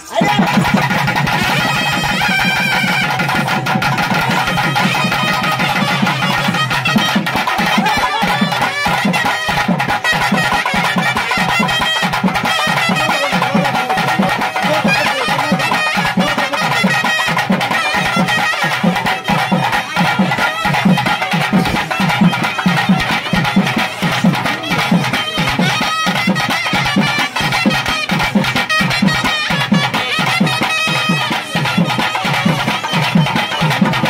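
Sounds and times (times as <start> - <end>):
fast steady drumming: 0.0 - 34.0
folk melody line: 0.0 - 34.0.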